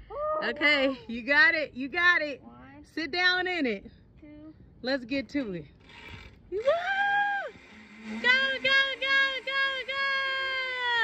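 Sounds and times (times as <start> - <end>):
excited woo cry: 6.6 - 7.6.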